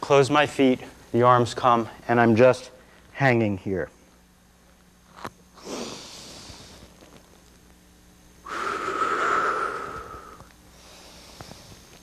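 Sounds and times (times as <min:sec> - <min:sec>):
man breathing deeply: 0:05.6 - 0:06.9, 0:08.4 - 0:11.9.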